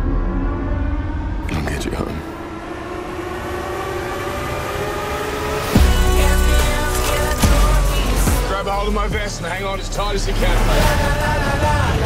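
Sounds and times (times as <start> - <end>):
trailer drone: 0.0 - 12.0.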